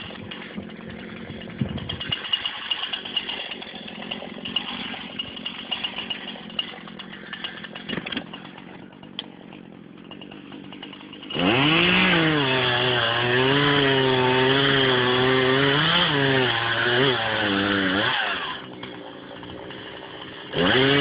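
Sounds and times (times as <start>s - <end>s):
chainsaw idling and revving: 0.0s - 21.0s.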